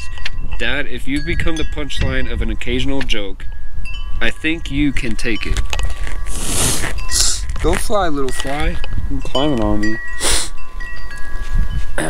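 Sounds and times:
wind chimes ringing: 0:00.0 - 0:12.0
wind rumble on microphone: 0:00.0 - 0:12.0.

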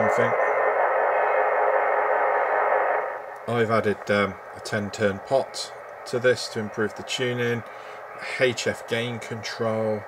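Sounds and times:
radio static hiss: 0:00.0 - 0:10.0.

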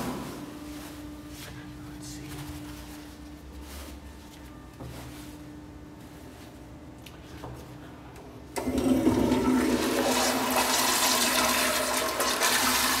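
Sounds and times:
toilet flushing: 0:08.6 - 0:13.0.

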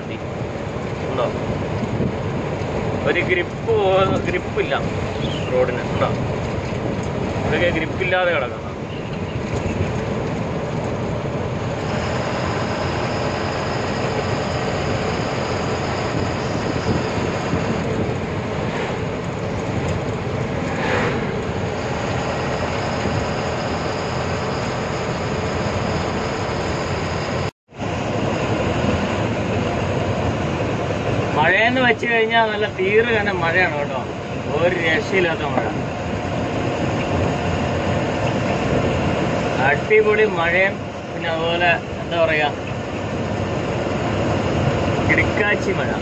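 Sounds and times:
truck engine and road noise: 0:00.0 - 0:46.0.

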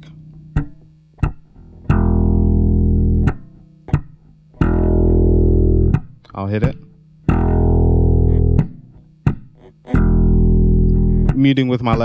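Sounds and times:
metronome clicking: 0:00.0 - 0:12.0
slapped electric bass notes: 0:00.0 - 0:12.0.

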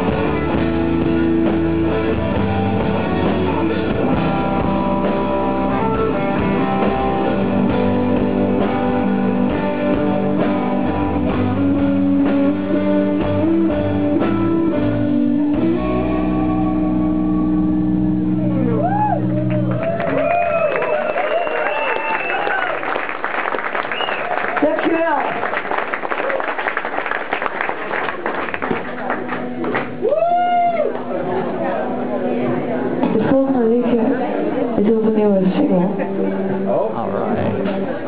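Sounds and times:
live rock band playing: 0:00.0 - 0:21.2, 0:27.6 - 0:38.0
crowd noise: 0:00.0 - 0:38.0.

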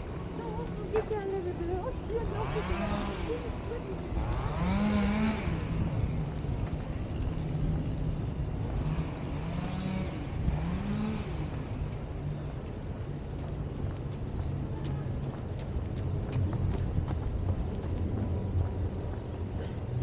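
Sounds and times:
steady low hum: 0:00.0 - 0:20.0
vehicle engines revving: 0:00.0 - 0:20.0.

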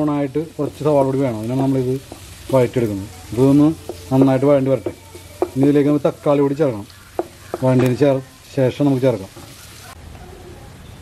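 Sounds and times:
onions sizzling in oil: 0:00.0 - 0:10.2
wooden spatula stirring: 0:00.6 - 0:10.0.

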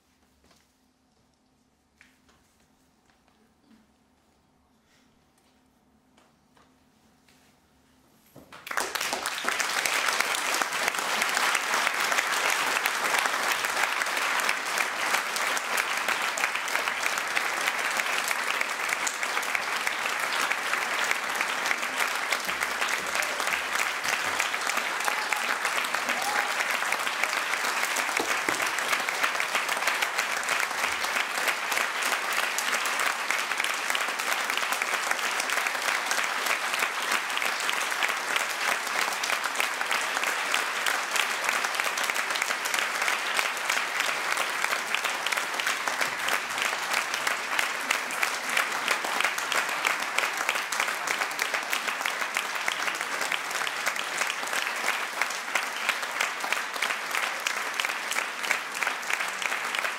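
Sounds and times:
audience applauding: 0:08.5 - 0:59.9.

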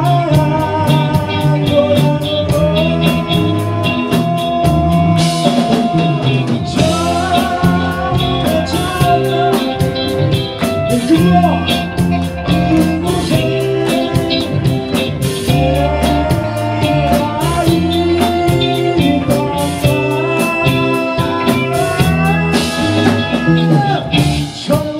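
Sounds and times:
live rock band playing: 0:00.0 - 0:24.9
male singer singing: 0:00.0 - 0:24.9.

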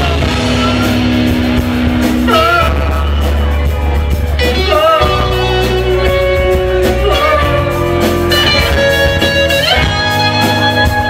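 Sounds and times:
live punk rock band: 0:00.0 - 0:11.0
person singing: 0:01.9 - 0:11.0.

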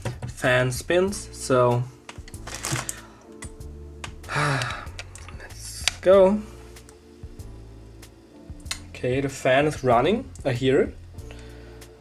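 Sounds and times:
background music: 0:00.0 - 0:12.0
wiring clicks and rattles: 0:02.1 - 0:06.0.

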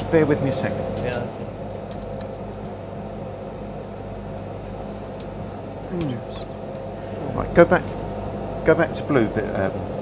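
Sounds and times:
electrical hum of equipment: 0:00.0 - 0:10.0.

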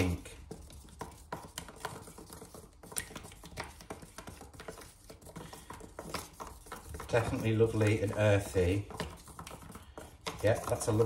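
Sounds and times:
stick scraping and clicking in a tub: 0:00.0 - 0:11.0.

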